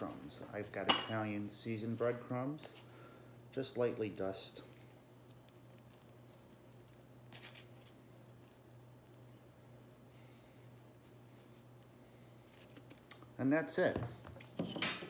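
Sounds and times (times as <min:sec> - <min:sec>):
steady low hum: 0:00.0 - 0:15.0
breadcrumbs rustling and pattering: 0:03.6 - 0:13.3.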